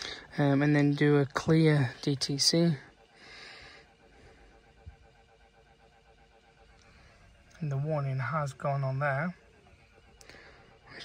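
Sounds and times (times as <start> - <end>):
faint steady hum: 0.0 - 11.0
breathy hiss: 2.9 - 4.6.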